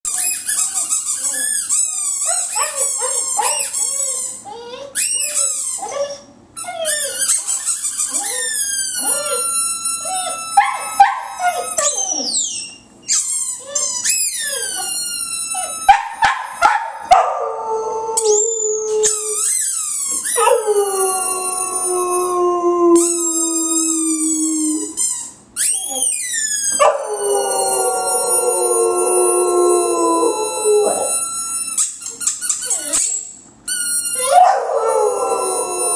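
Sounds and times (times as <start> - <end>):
squeaky ball squeaking: 0.1 - 17.2, 18.2 - 22.2, 23.0 - 28.8, 29.8 - 35.9
dog yelping: 8.1 - 12.6, 15.6 - 17.6, 26.7 - 28.5, 34.2 - 35.9
dog howling: 20.4 - 25.0, 26.7 - 31.4, 34.2 - 35.9.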